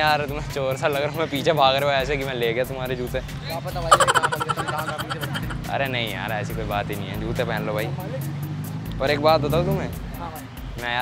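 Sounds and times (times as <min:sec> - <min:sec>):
man laughing: 0:03.9 - 0:05.6.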